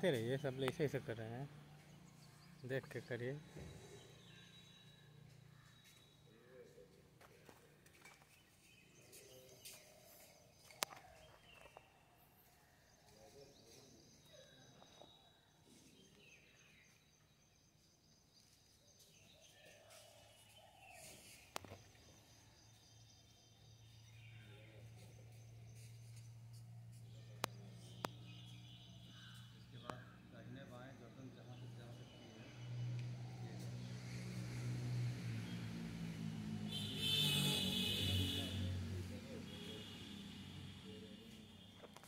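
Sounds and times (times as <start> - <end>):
faint bird chirps: 9.0 - 17.0.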